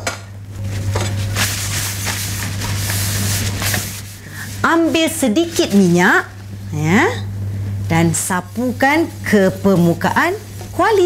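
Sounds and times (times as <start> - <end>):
paper towel wiping frying pan: 0.7 - 6.3, 8.1 - 11.0.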